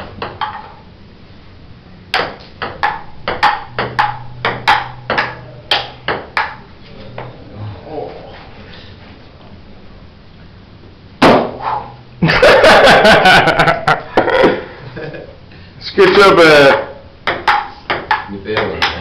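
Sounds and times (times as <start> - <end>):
ping pong ball clicks: 2.1 - 6.6, 16.7 - 19.0
loud knock: 11.2 - 11.6.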